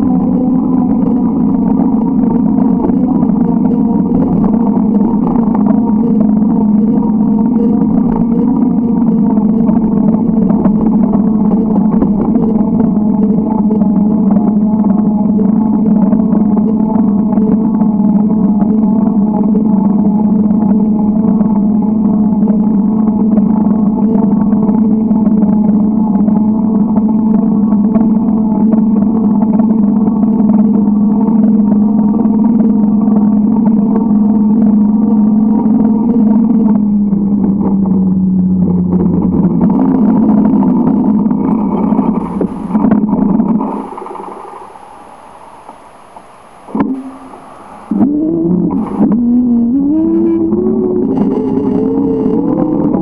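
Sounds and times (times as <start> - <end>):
motor humming: 33.2 - 53.0.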